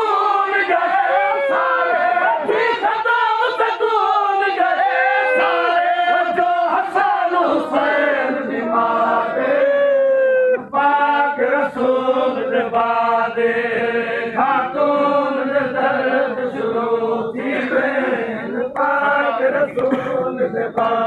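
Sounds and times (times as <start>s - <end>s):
men chanting: 0.0s - 21.0s.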